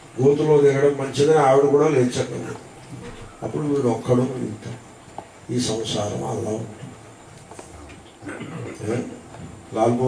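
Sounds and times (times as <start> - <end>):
man talking: 0.2 - 2.6, 3.4 - 4.8, 5.5 - 6.9, 8.3 - 10.0.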